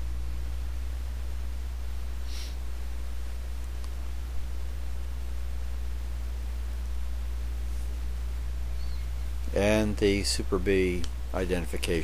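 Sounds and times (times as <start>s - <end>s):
steady low hum: 0.0s - 12.0s
faint hiss: 2.1s - 2.8s.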